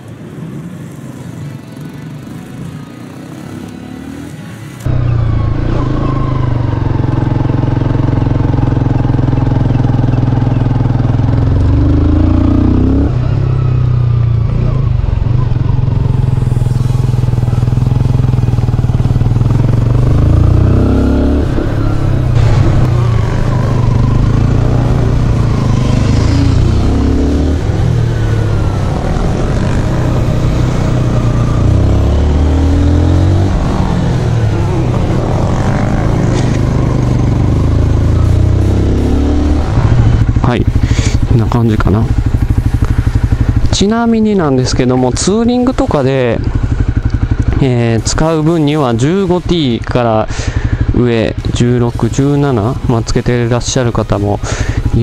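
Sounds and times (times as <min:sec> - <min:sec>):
motorcycle engine revving: 0:00.9 - 0:55.0.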